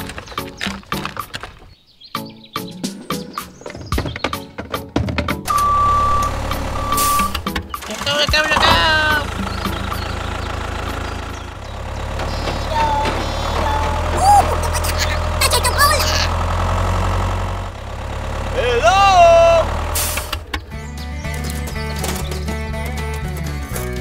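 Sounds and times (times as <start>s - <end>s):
tractor engine idling: 5.4s - 24.0s.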